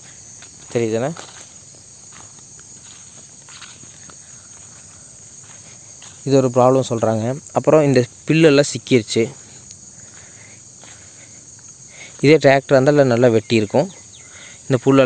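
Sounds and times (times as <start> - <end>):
insects buzzing: 0.0 - 15.0
man talking: 0.7 - 1.4, 6.2 - 9.6, 12.1 - 14.0, 14.7 - 15.0.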